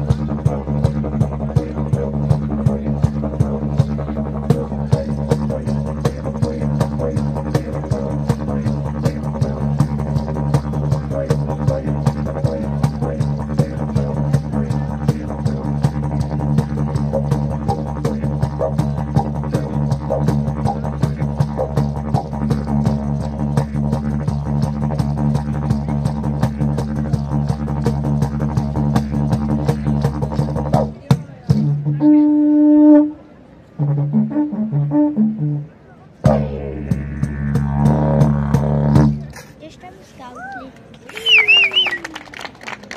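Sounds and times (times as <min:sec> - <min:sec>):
didgeridoo drone: 0:00.0 - 0:33.2, 0:33.8 - 0:39.5.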